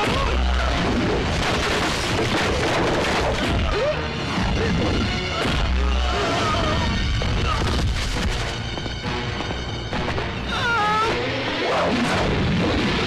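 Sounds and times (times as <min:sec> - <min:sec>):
loud fight scene music: 0:00.0 - 0:13.0.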